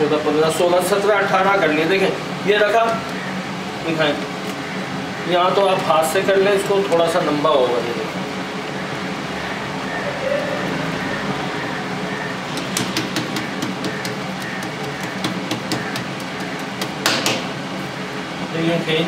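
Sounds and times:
hands patting dough on marble: 0:12.6 - 0:17.5.

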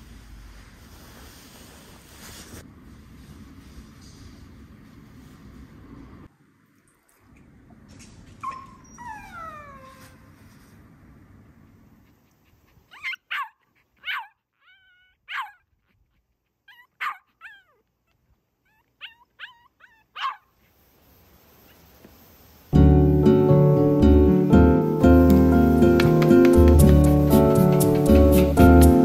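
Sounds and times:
small dog whining: 0:08.4 - 0:10.3, 0:12.8 - 0:20.4
small dog barking: 0:12.9 - 0:14.4, 0:15.2 - 0:15.6, 0:16.7 - 0:17.8, 0:19.0 - 0:20.5.

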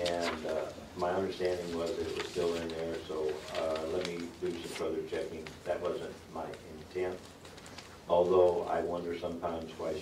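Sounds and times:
man speaking: 0:00.0 - 0:07.3, 0:08.1 - 0:10.0.

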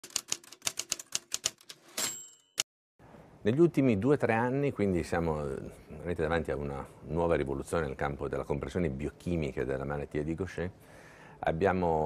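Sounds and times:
typewriter keys clacking: 0:00.0 - 0:02.2.

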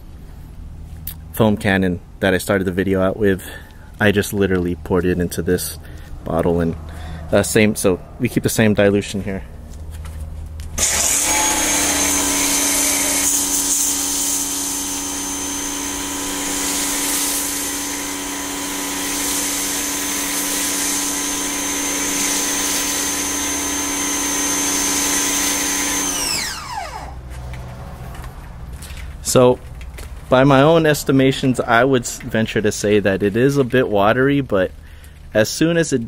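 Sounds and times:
pressure washer motor whine: 0:10.8 - 0:27.4
foam cannon spraying hiss: 0:16.1 - 0:22.9.

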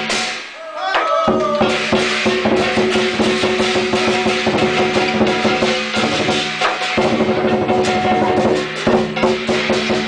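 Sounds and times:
cymbals clashing: 0:00.0 - 0:00.7, 0:01.3 - 0:10.0
large drum beating rapidly: 0:01.3 - 0:10.0.

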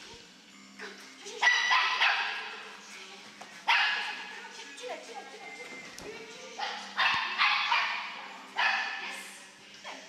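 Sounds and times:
small dog barking with echo: 0:01.4 - 0:02.5, 0:06.6 - 0:09.2.

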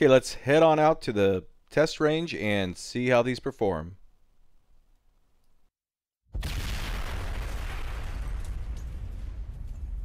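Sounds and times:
deep explosion rumble: 0:06.4 - 0:10.0.

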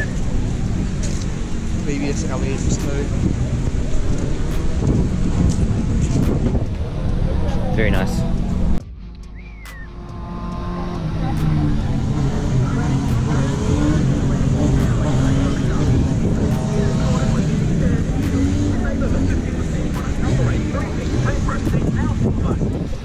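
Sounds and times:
car engine running: 0:00.0 - 0:23.0
people talking: 0:01.8 - 0:03.2, 0:07.2 - 0:08.4, 0:10.7 - 0:23.0.

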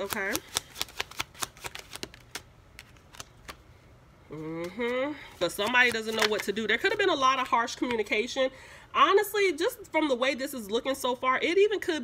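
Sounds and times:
cards being shuffled: 0:00.0 - 0:03.7, 0:05.3 - 0:08.1.

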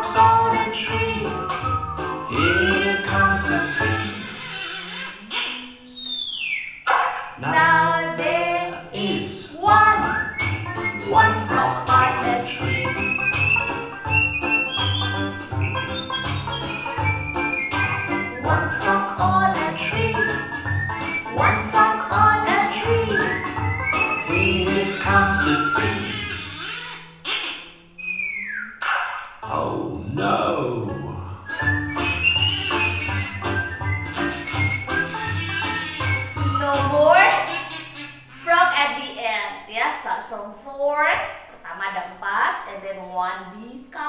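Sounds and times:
children's song vocals over beat: 0:00.0 - 0:01.7, 0:02.3 - 0:04.2, 0:07.4 - 0:13.6, 0:18.1 - 0:20.5, 0:21.2 - 0:23.6, 0:24.2 - 0:26.3.

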